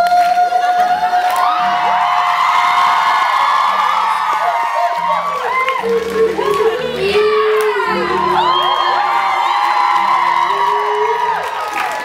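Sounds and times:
audience whooping and cheering: 0.0 - 12.0
man singing a long high note: 3.8 - 11.7.

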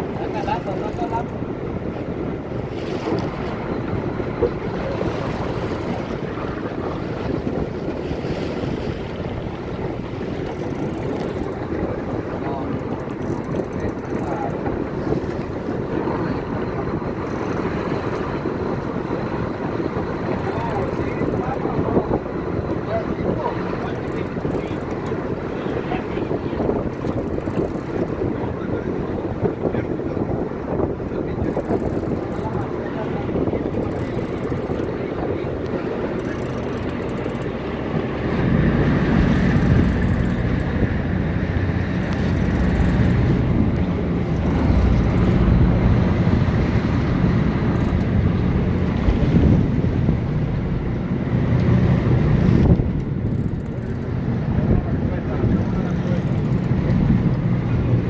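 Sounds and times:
boat engine running: 0.0 - 58.0
sea washing along hull: 0.0 - 58.0
wind noise on microphone: 0.0 - 58.0.

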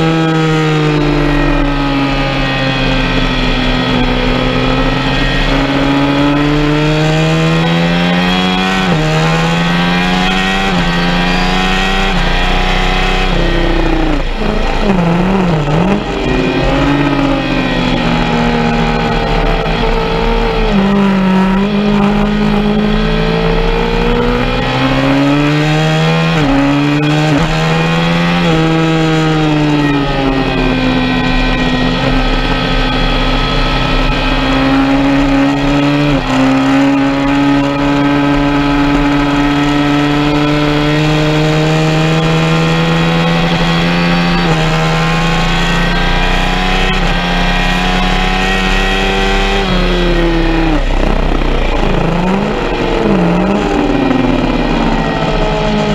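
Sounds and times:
motorcycle engine revving: 0.0 - 55.9.

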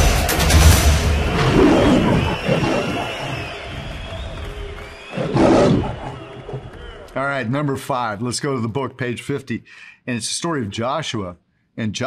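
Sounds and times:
trailer closing music: 0.0 - 2.5
lion roar sound effect: 1.3 - 3.6, 5.1 - 6.8.

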